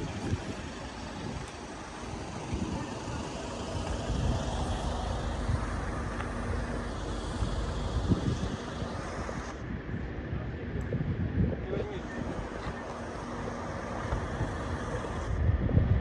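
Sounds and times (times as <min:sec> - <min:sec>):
faint voices: 0:00.0 - 0:15.4
low vehicle engine hum: 0:00.0 - 0:16.0
wind rumbling on microphone: 0:00.0 - 0:16.0.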